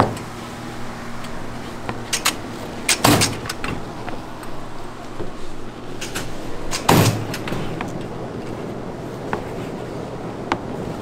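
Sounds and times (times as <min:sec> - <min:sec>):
soft rustle: 0:03.8 - 0:11.0.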